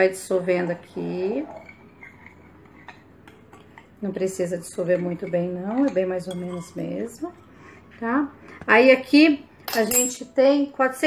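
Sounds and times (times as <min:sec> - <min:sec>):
spoon clinking against glass bowl: 0:09.7 - 0:10.3.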